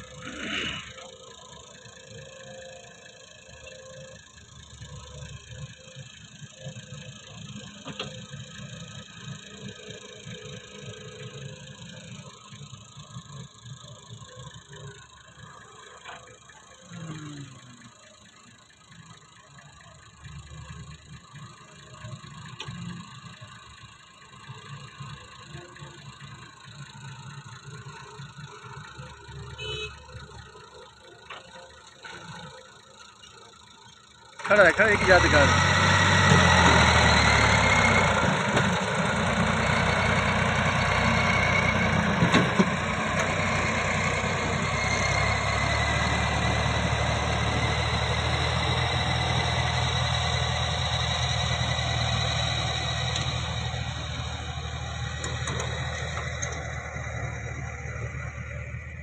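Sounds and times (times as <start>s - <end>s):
excavator engine and hydraulics: 0.0s - 59.0s.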